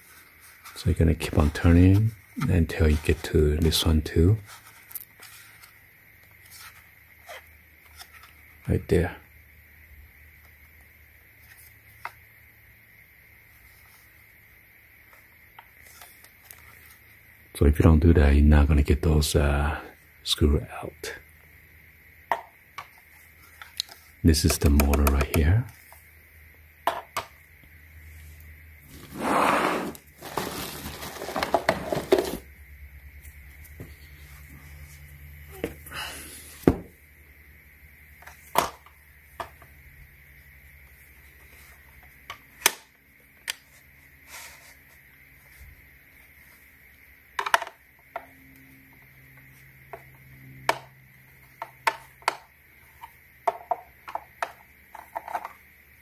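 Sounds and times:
plastic parts clicking and knocking: 23.6 - 25.5, 47.4 - 48.3, 51.6 - 55.6
plastic rubbing: 28.9 - 32.4.

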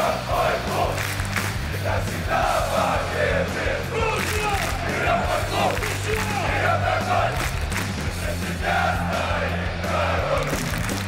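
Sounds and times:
crowd chanting: 0.0 - 10.6
background music with bass: 0.0 - 11.0.

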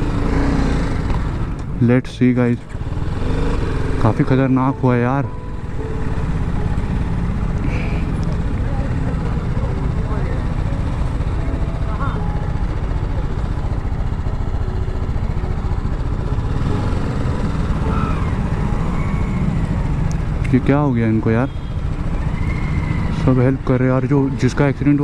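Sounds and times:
motorcycle engine idling: 0.0 - 25.0
faint crowd voices: 7.6 - 16.5.

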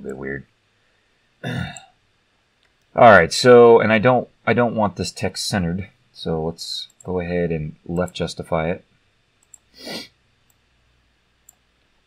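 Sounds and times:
faint computer mouse clicks: 9.4 - 9.7, 11.4 - 11.6.

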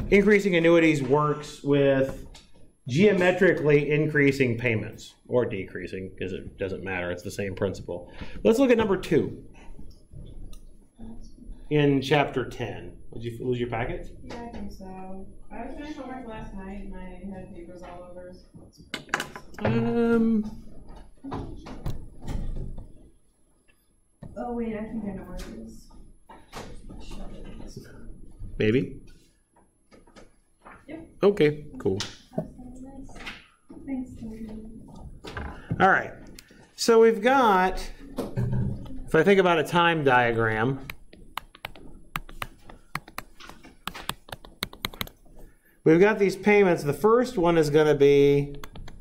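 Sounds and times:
stylus tapping on tablet screen: 40.8 - 45.5.

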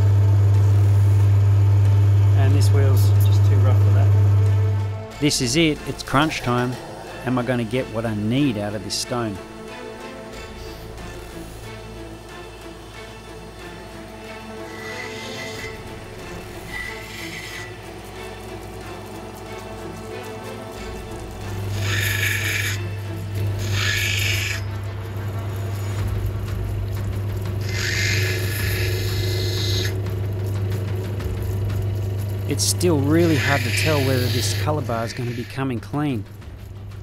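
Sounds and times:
background music: 0.0 - 37.0
grinding machine motor hum: 0.0 - 37.0
stone grinding on wheel: 14.0 - 35.9.

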